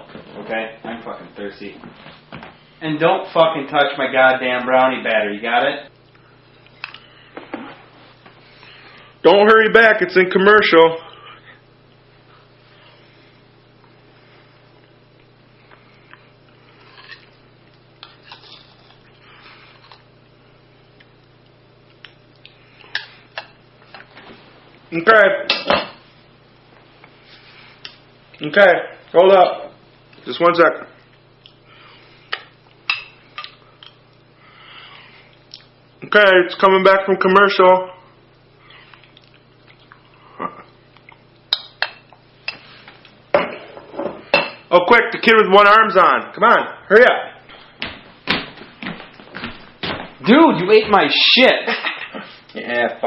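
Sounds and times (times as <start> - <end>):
low steady hum: 0.0 - 53.0.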